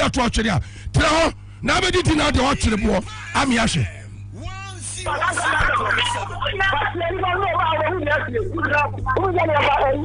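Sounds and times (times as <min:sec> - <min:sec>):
rapid animated talking: 0:00.0 - 0:10.0
steady low hum: 0:00.0 - 0:10.0.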